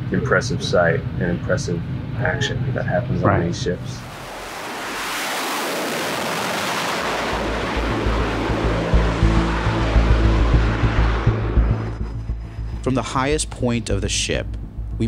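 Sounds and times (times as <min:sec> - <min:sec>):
jet engines roaring at full power: 0:00.0 - 0:13.0
low rumble with irregular thumping: 0:07.0 - 0:15.0.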